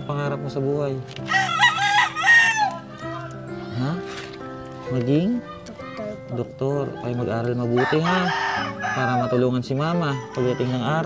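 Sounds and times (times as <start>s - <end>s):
rooster crowing: 1.3s - 2.9s, 7.8s - 11.0s.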